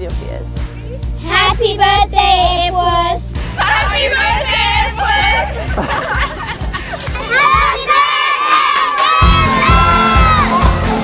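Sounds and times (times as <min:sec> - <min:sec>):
music with steady beat: 0:00.0 - 0:07.9, 0:09.2 - 0:11.0
children shouting and cheering: 0:01.3 - 0:11.0.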